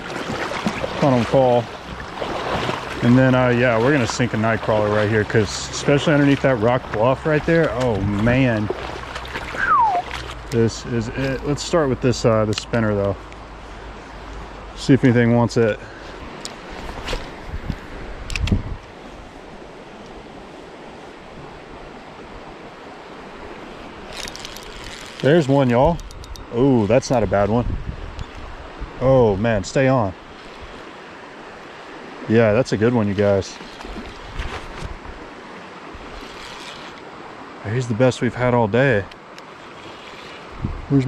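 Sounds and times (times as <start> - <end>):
flowing creek water: 0.0 - 41.0
wind on microphone: 16.8 - 19.3, 25.8 - 29.4, 33.8 - 35.3, 40.5 - 41.0
fishing reel clicks and knocks: 26.0 - 26.5.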